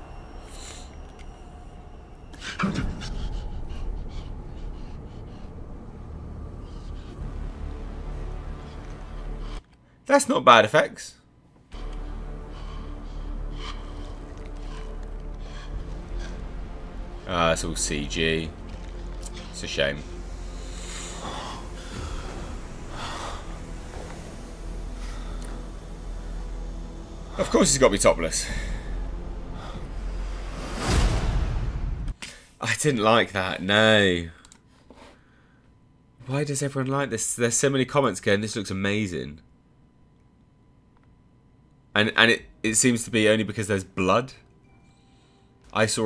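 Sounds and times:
low rumble: 0.0 - 9.6, 11.7 - 32.2
man panting: 2.3 - 7.4, 19.2 - 25.9.

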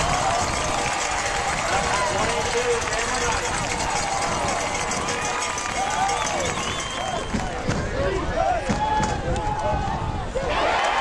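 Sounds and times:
crowd calling and shouting: 0.0 - 11.0.

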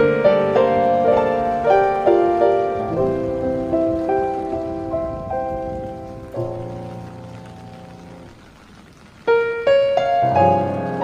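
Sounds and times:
rain falling on pavement: 0.0 - 11.0
slow piano melody: 0.0 - 11.0.

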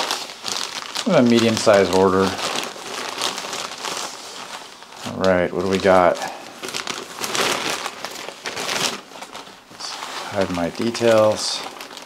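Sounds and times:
plastic mailer bag crinkling: 0.0 - 12.0.

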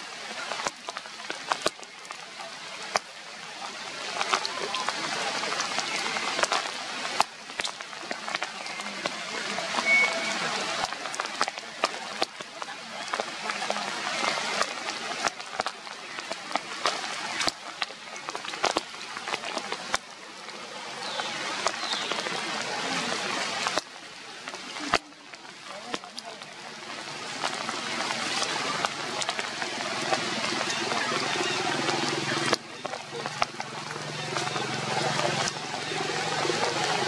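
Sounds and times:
rain falling through foliage: 0.0 - 37.0.

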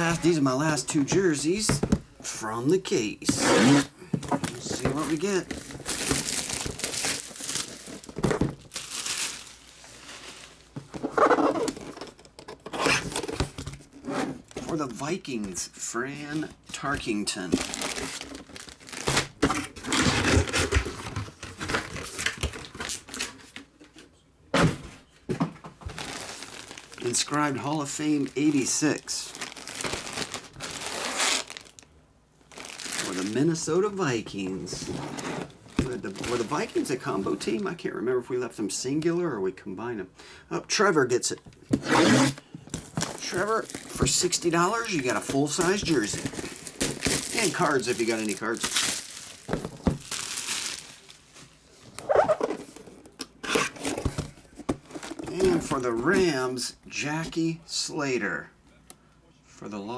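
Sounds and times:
cardboard rustling and scraping: 3.2 - 8.9, 9.8 - 14.8, 16.4 - 23.6, 34.4 - 37.6, 41.7 - 56.4
plastic bag crinkling: 4.3 - 10.8, 17.3 - 19.4, 25.9 - 31.9, 32.5 - 33.8, 42.3 - 52.8.

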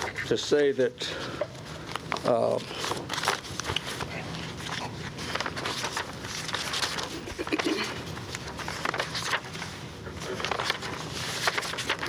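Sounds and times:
paper rustling and pages turning: 0.0 - 12.0.

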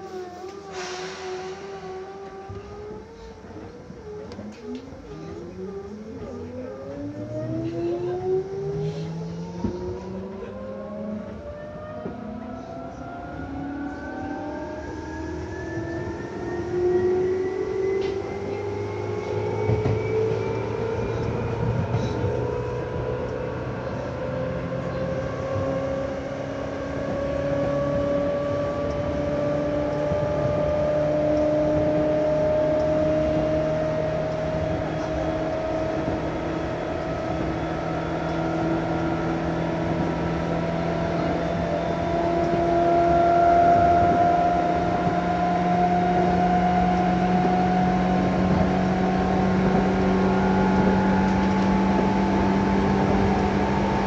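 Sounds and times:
train motor whine: 0.0 - 54.0
wheels rumbling on rails: 0.0 - 54.0.

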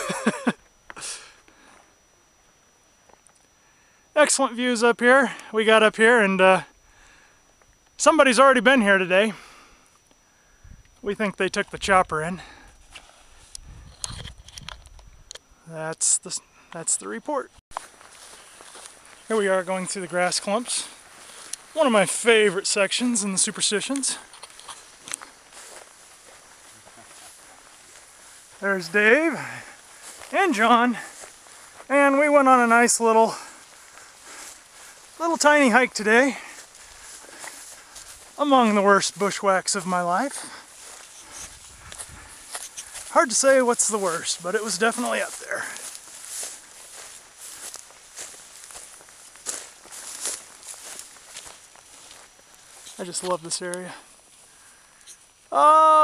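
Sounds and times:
footsteps through dry grass: 12.7 - 14.5, 17.7 - 55.5
light crackles: 17.7 - 55.6.

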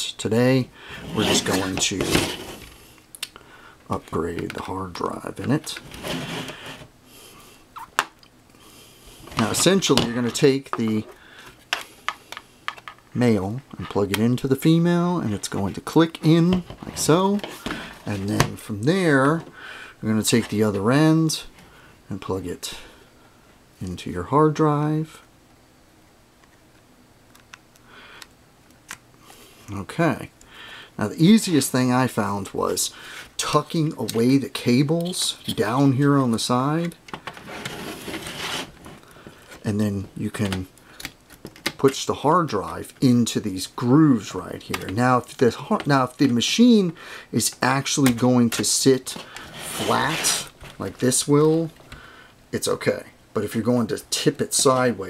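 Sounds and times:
cables scraping and rustling: 0.9 - 2.8, 3.9 - 6.9, 9.2 - 13.0, 15.2 - 19.5, 31.5 - 43.2, 44.1 - 52.0.

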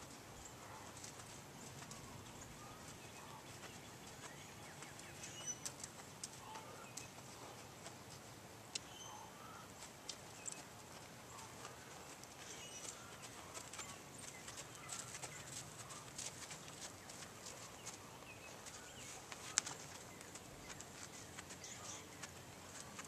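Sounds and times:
horse hoofbeats on sand: 0.0 - 8.3, 9.8 - 23.0.

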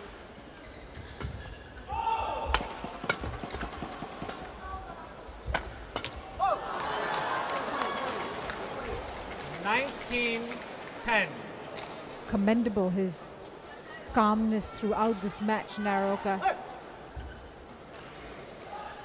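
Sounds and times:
crowd noise: 0.0 - 19.0
shoes squeaking on court: 0.5 - 1.5.

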